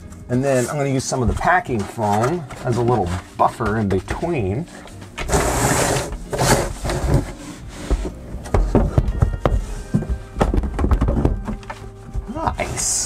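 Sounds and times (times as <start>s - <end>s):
packing foam rustling: 4.4s - 8.4s.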